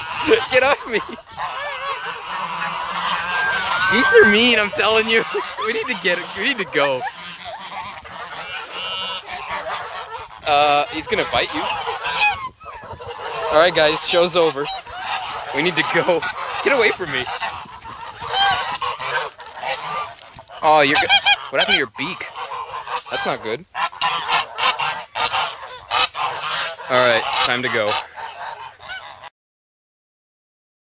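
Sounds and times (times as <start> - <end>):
geese honking: 0.0 - 29.3.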